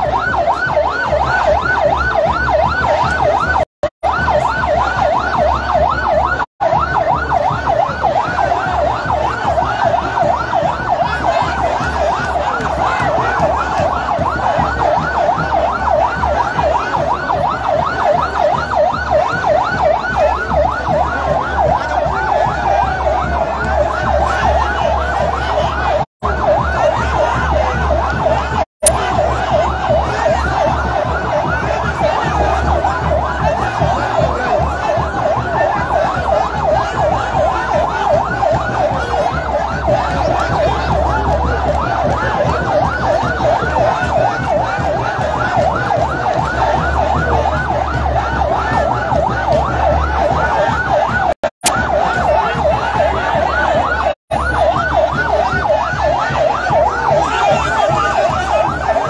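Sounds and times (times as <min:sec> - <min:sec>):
sirens yelping and wailing: 0:00.0 - 0:59.0.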